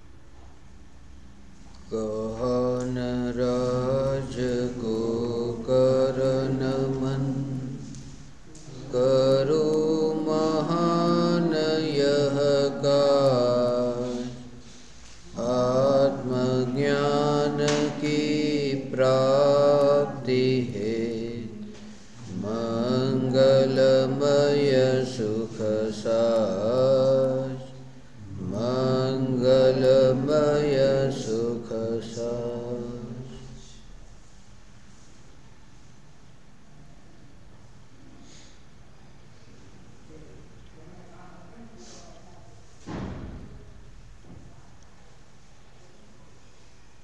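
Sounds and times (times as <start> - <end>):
man chanting in long held notes: 1.9 - 7.9, 8.6 - 14.6, 15.3 - 33.8.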